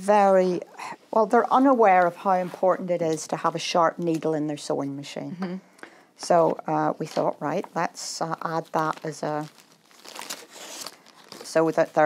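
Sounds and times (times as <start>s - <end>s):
plastic bag crinkling: 8.4s - 12.0s.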